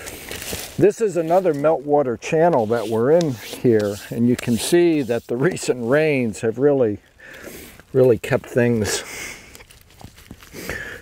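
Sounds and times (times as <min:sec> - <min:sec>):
hands scraping stone and soil: 0:00.0 - 0:06.3.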